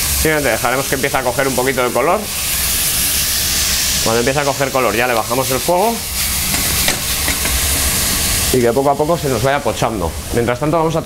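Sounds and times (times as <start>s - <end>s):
vegetables sizzling in oil: 0.0s - 10.5s
gas burner low rumble: 0.0s - 11.0s.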